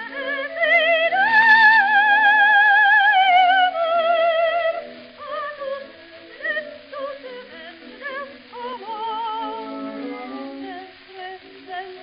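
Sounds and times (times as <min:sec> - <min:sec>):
musical accompaniment: 0:00.0 - 0:12.0
operatic soprano singing: 0:00.0 - 0:12.0.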